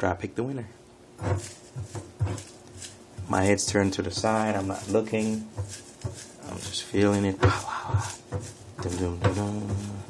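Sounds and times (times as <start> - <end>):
paper slips rustling in a bowl: 1.3 - 10.0.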